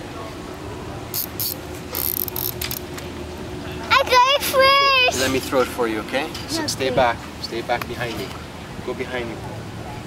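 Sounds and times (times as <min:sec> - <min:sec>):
low background hum: 0:00.0 - 0:10.0
toy fishing reel clicking: 0:01.2 - 0:02.8.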